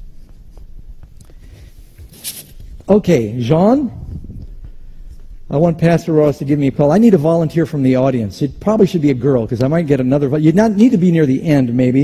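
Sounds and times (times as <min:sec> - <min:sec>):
footsteps on stage floor: 0:00.0 - 0:03.0, 0:04.0 - 0:05.6.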